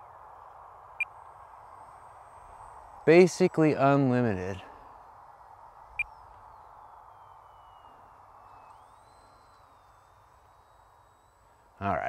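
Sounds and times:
distant model plane motor whine: 0:00.0 - 0:12.0
soft hiss: 0:00.0 - 0:12.0.

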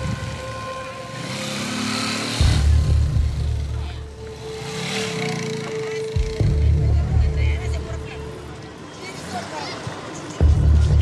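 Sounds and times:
background music: 0:00.0 - 0:11.0
motorbike engines revving: 0:00.0 - 0:11.0.

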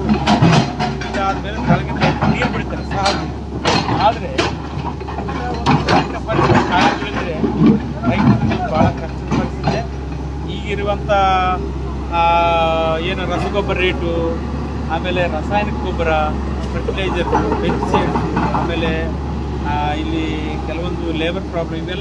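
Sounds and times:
excavator diesel engine hum: 0:00.0 - 0:22.0
man talking: 0:01.0 - 0:04.6, 0:05.2 - 0:22.0.

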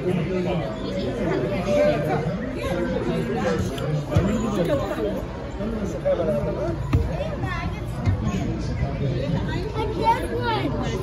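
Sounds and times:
overlapping chatter of voices: 0:00.0 - 0:11.0.

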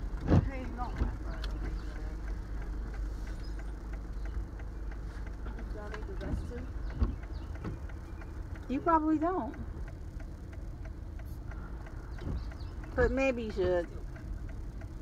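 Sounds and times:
voices: 0:00.0 - 0:14.9
van engine humming: 0:00.0 - 0:15.0.

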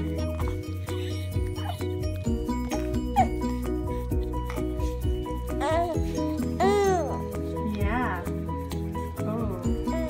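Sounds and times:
background music with beat: 0:00.0 - 0:10.0
baby cooing: 0:00.2 - 0:04.0, 0:05.5 - 0:07.4.

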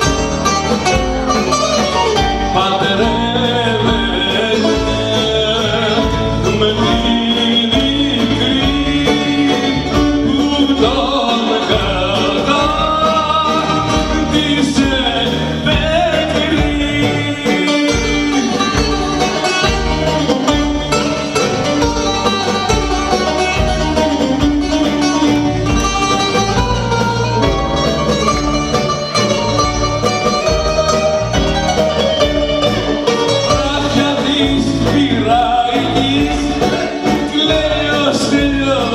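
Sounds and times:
band playing dance rhythm: 0:00.0 - 0:38.9
man singing: 0:00.8 - 0:27.0, 0:28.7 - 0:38.9.

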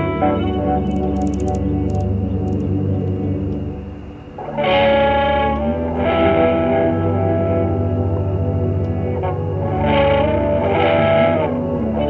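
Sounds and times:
ambient meditation music: 0:00.0 - 0:12.0.

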